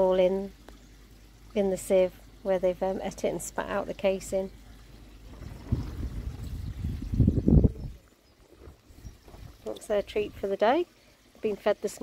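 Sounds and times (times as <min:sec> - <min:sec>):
pond water sloshing and splashing: 0:00.0 - 0:12.0.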